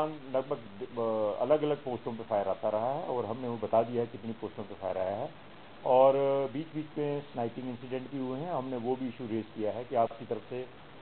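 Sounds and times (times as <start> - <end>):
man speaking: 0.0 - 10.7.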